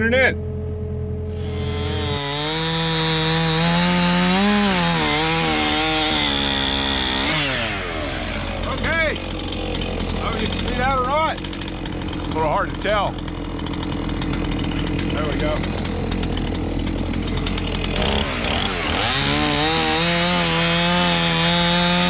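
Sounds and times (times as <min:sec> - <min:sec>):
excavator engine running: 0:00.0 - 0:22.0
chainsaw cutting log: 0:01.3 - 0:22.0.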